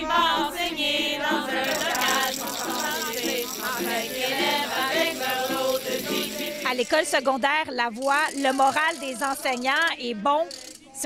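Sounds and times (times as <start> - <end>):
ukulele strumming: 0.0 - 7.0
women singing together: 0.0 - 7.2.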